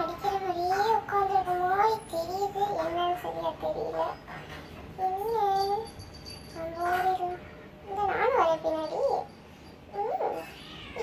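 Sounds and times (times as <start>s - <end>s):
kitten meowing: 10.3s - 11.0s.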